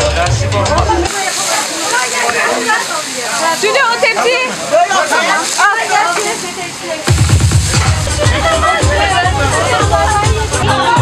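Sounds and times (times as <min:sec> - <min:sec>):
people talking: 0:00.0 - 0:11.0
fish sizzling in hot oil: 0:01.0 - 0:10.2.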